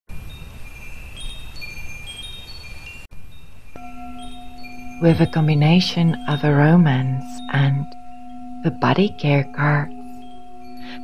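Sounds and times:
chimes ringing: 0.1 - 11.0.

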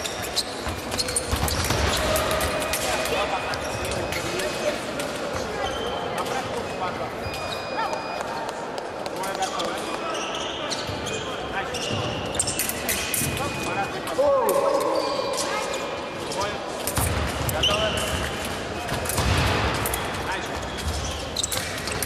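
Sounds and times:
shoe squeaks: 0.0 - 4.7, 5.3 - 8.6, 9.2 - 16.8, 17.4 - 19.0, 19.8 - 22.0.

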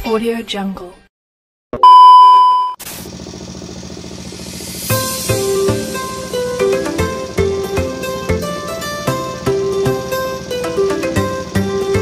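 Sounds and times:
test-tone beep: 1.8 - 2.8.

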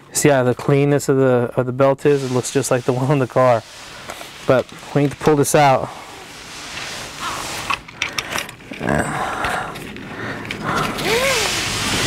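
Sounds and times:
seat belt webbing rustling: 3.3 - 9.0, 9.7 - 12.0.

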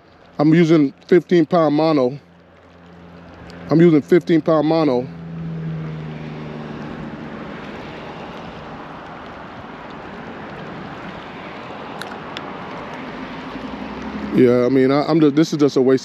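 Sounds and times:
wind: 0.0 - 16.0
low motor hum: 4.5 - 11.0.

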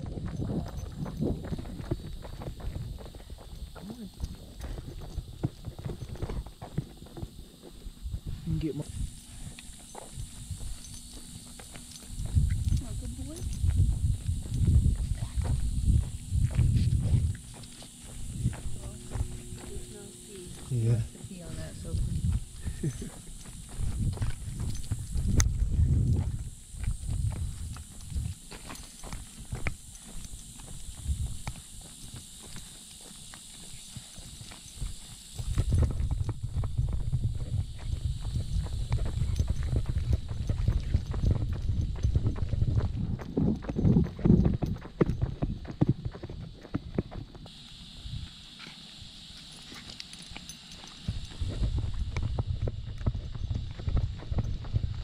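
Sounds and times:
footsteps on concrete: 0.0 - 47.6
low rumbling noise: 8.0 - 28.4.

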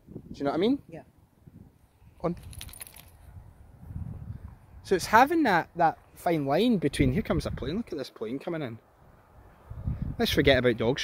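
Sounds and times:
quiet outdoor background: 0.0 - 11.0
person speaking: 2.2 - 2.5
small metal pieces jingling: 2.4 - 3.3.

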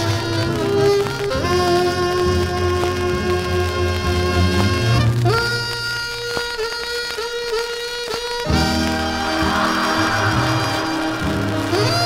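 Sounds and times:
horn and saxophone chords: 8.3 - 12.0.

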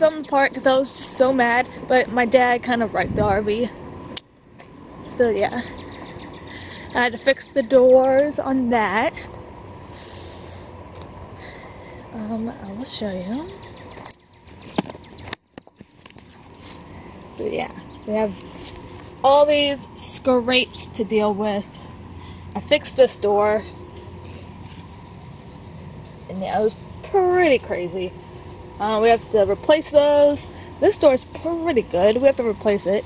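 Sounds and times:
low background rumble: 0.0 - 33.0
steady low hum: 0.0 - 33.0
short breathy hiss: 9.9 - 10.7.

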